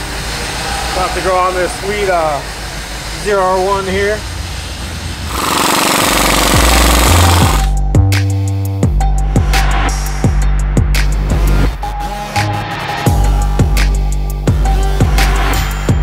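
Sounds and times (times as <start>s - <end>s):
impact wrench rattling: 5.3s - 7.7s
music with bass-drum beat: 5.3s - 16.0s.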